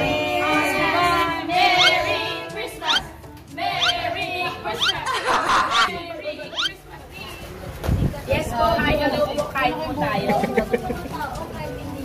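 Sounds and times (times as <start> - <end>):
group chatter: 0.0 - 12.0.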